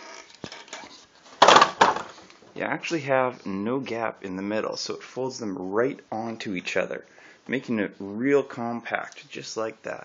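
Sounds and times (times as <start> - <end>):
wooden ends knocking shut: 1.4 - 2.2.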